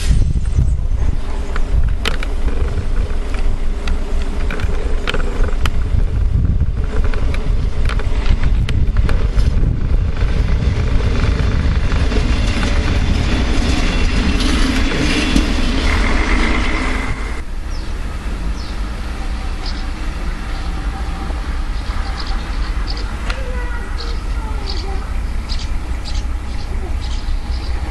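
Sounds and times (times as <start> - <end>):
train rumbling on rails: 0.0 - 27.9.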